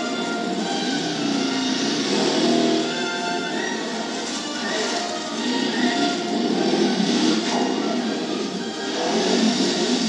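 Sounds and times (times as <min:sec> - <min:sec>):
film background music: 0:00.0 - 0:10.0
go-kart engine running: 0:00.0 - 0:10.0.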